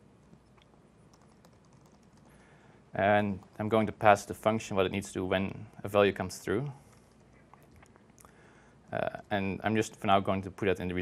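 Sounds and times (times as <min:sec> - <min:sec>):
low room hum: 0:00.0 - 0:11.0
laptop keyboard typing: 0:00.2 - 0:02.4.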